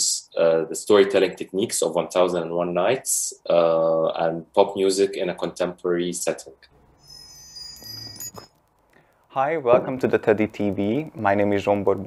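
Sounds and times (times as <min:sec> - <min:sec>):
high ringing chime: 0:07.0 - 0:08.5.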